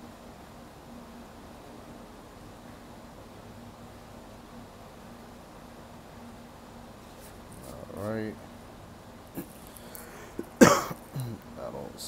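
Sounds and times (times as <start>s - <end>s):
faint small sounds: 9.2s - 11.6s
man coughing: 10.2s - 11.4s.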